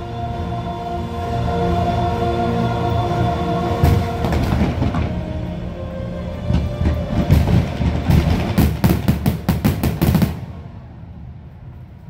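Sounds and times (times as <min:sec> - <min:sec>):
low fireworks rumble: 0:03.7 - 0:12.0
fireworks bangs: 0:03.8 - 0:05.3, 0:06.5 - 0:10.7.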